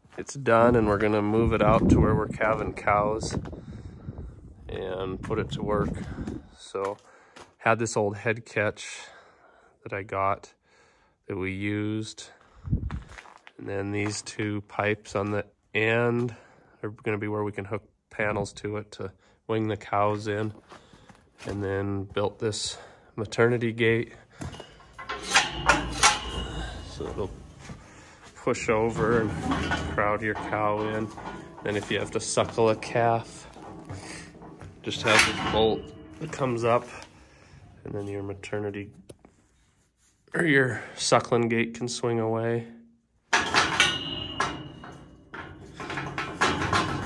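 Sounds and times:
steel gate knocking: 24.4s - 37.2s, 43.3s - 47.0s.

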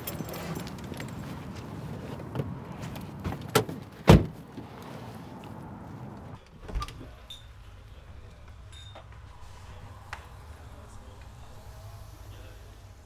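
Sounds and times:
car door thud: 3.2s - 4.4s.

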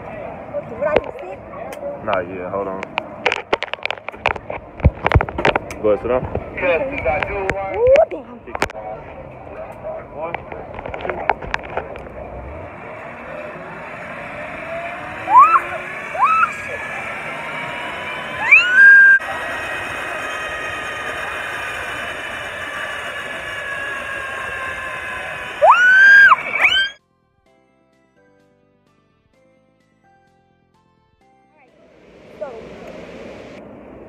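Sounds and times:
rushing noise: 10.9s - 27.0s, 31.7s - 34.0s
woman screaming: 15.2s - 16.7s, 18.4s - 19.2s, 25.6s - 27.0s.

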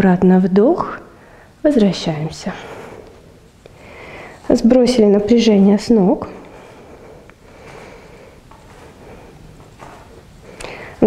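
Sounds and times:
bare feet shifting on mat: 6.5s - 10.8s.

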